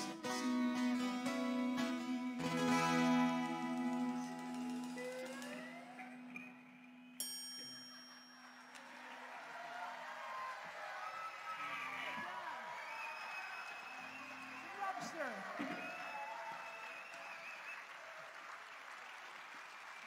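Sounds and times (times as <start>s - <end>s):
audience cheering and shouting: 8.8s - 18.4s.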